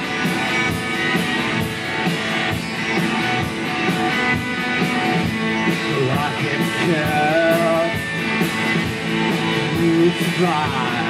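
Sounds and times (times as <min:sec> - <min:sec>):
distorted electric guitar: 0:00.0 - 0:11.0
steady drum beat: 0:00.0 - 0:11.0.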